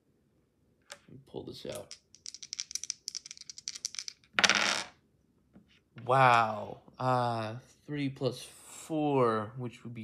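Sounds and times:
dice rattling in hand: 1.7s - 4.9s
dice clatter: 1.7s - 5.0s.

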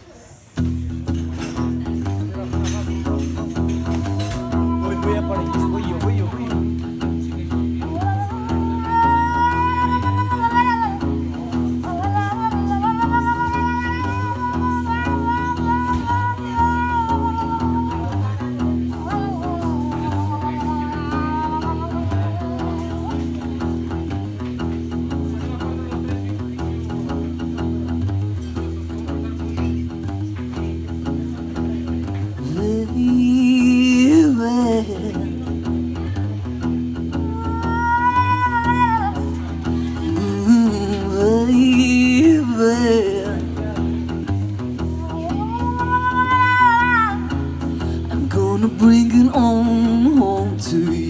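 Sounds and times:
acoustic guitar blues riff: 0.4s - 51.0s.

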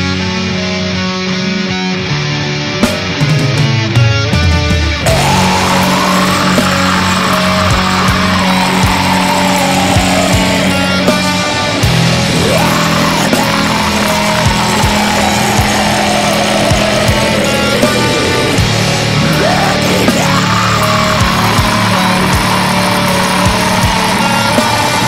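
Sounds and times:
black metal with distorted guitars: 0.0s - 25.0s
high melodic guitar line: 0.0s - 25.0s.

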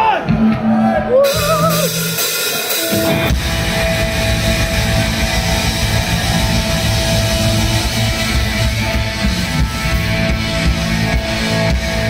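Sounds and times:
bass guitar: 0.0s - 12.0s
distorted electric guitars: 0.0s - 12.0s
rock drum beat: 0.0s - 12.0s.

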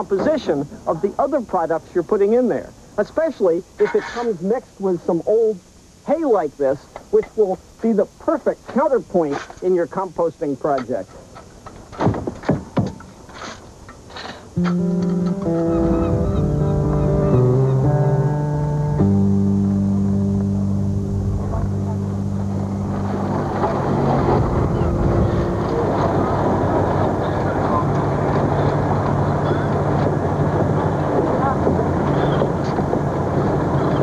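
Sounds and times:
rushing harbor ambience: 0.0s - 34.0s
synthesizer music with held notes: 14.6s - 26.7s
low hum: 14.6s - 34.0s.

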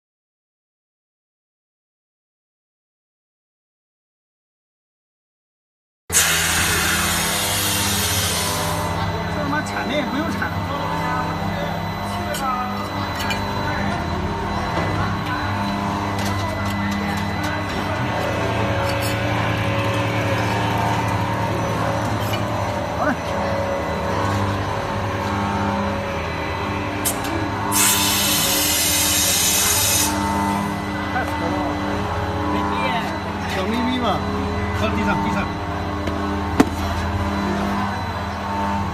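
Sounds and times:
factory machinery humming: 6.1s - 38.9s.

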